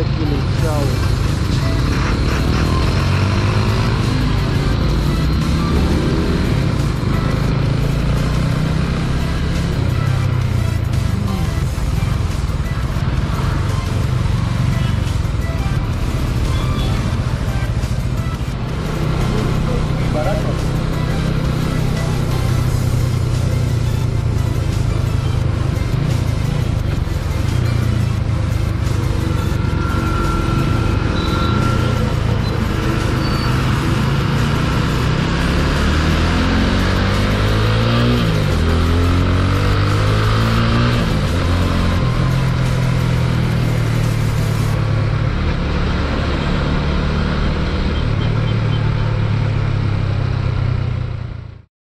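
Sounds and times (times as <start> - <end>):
motorcycle engine running: 0.0 - 51.7.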